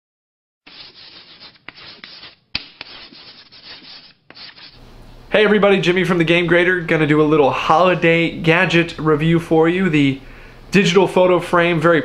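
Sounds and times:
dry scratching and rubbing: 0.7s - 4.8s.

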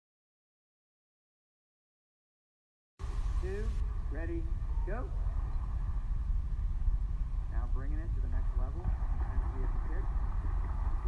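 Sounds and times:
low rumbling room noise: 3.0s - 11.0s.

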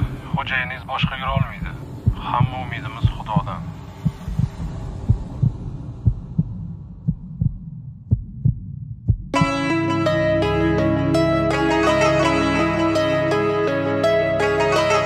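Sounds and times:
low hum: 0.0s - 9.4s
low dull thuds: 0.0s - 9.6s
music with plucked notes: 9.4s - 15.0s.

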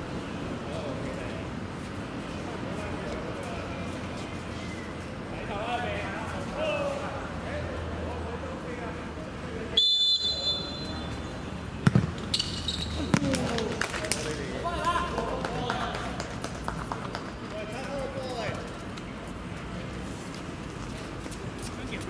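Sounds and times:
referee's whistle: 9.8s - 11.2s
ball struck with a thud: 11.8s - 12.3s.

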